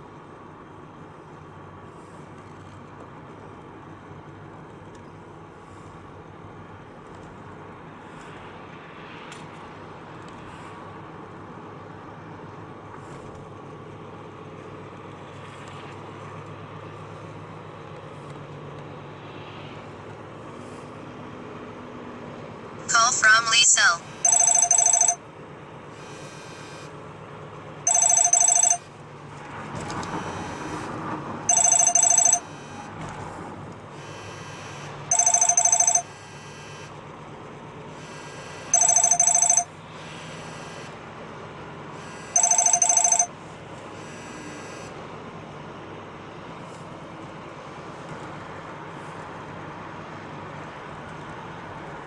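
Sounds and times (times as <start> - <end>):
car road noise: 0.0 - 52.0
phone ringtone ringing: 22.9 - 25.2, 27.8 - 28.9, 31.5 - 32.8, 34.2 - 36.8, 38.3 - 39.8, 42.1 - 43.4.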